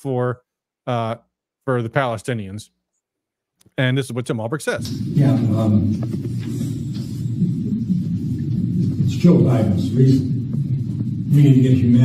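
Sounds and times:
low muffled room rumble: 0:04.8 - 0:12.0.

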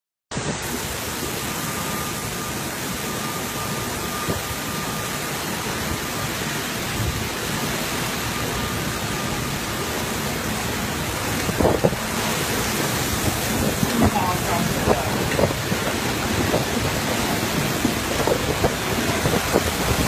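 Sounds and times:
heavy wind-driven rain: 0:00.3 - 0:20.0.

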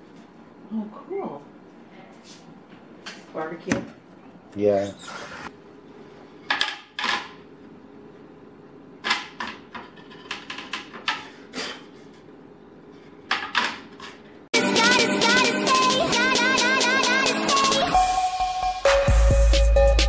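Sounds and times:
electronic music: 0:14.6 - 0:20.0.

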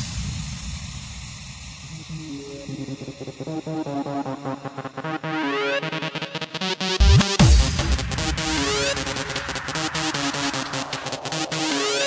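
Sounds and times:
electronic dance music: 0:01.9 - 0:12.0.

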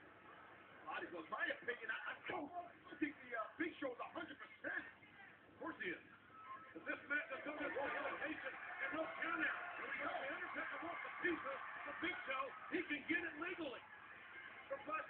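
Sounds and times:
crowd cheering and shouting: 0:07.3 - 0:15.0.

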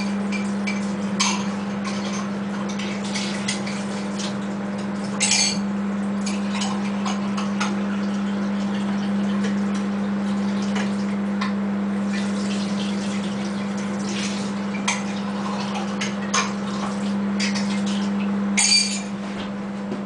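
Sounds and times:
microwave oven humming: 0:00.0 - 0:20.0.

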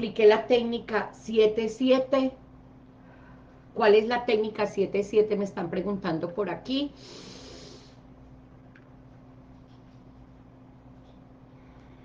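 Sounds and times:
faint steady hum: 0:00.0 - 0:12.0
person taking a deep breath: 0:07.0 - 0:08.0.

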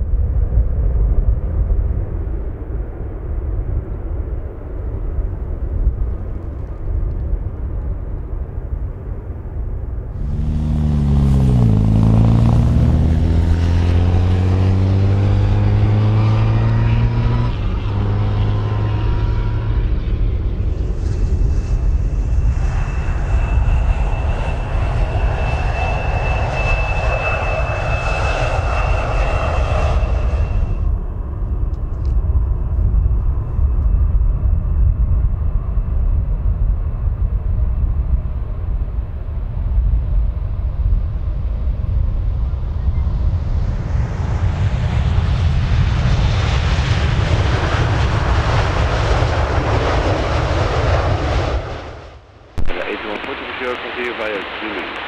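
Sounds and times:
low rumble of jet airliner: 0:00.0 - 0:55.0
jet engine tones climbing in pitch: 0:10.0 - 0:36.0, 0:41.5 - 0:55.0
high jet whine: 0:10.1 - 0:31.6, 0:47.5 - 0:55.0.

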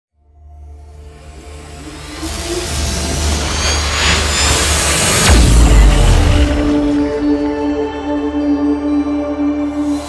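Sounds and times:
low steady drone: 0:00.2 - 0:10.0
whoosh with rising sweeps: 0:00.9 - 0:07.2.

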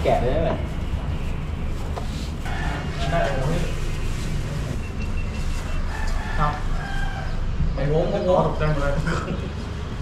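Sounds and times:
rooster crowing: 0:02.4 - 0:03.5, 0:05.7 - 0:07.6.

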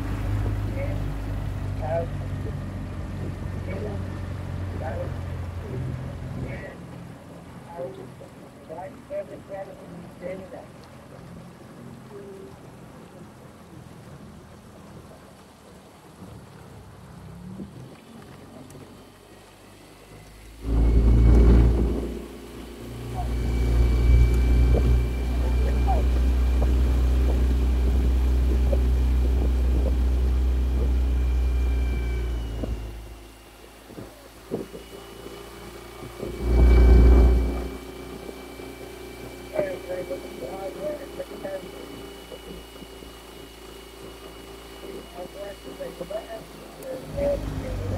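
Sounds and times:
wind rumble on microphone: 0:00.0 - 0:19.1, 0:20.6 - 0:33.2, 0:33.8 - 0:43.0
outboard motor whine: 0:00.0 - 0:47.9.

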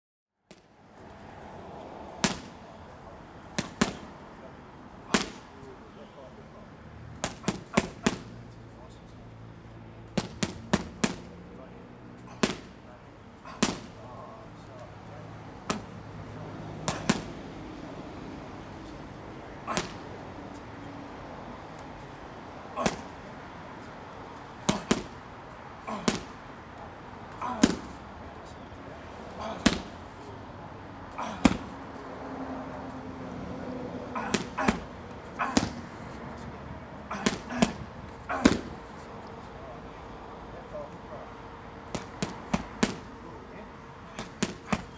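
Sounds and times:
gloved punches on kick pads: 0:02.2 - 0:02.6, 0:03.6 - 0:04.1, 0:05.1 - 0:05.5, 0:07.2 - 0:08.3, 0:10.2 - 0:11.3, 0:12.3 - 0:12.8, 0:13.5 - 0:14.0, 0:15.6 - 0:16.0, 0:16.7 - 0:17.4, 0:19.7 - 0:20.1, 0:22.8 - 0:23.2, 0:24.6 - 0:25.2, 0:25.9 - 0:26.4, 0:27.3 - 0:28.0, 0:29.4 - 0:30.0, 0:31.2 - 0:31.8, 0:34.2 - 0:36.1, 0:37.1 - 0:38.8, 0:41.9 - 0:43.1, 0:44.1 - 0:44.9.

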